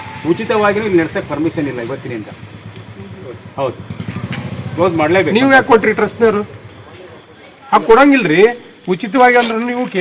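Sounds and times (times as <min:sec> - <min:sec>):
engine idling: 0:00.0 - 0:07.4
people talking: 0:00.2 - 0:03.8, 0:04.6 - 0:10.0.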